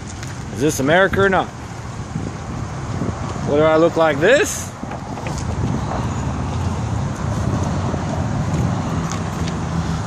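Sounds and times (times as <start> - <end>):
engine hum: 0.0 - 10.0
road traffic rumble: 0.0 - 10.0.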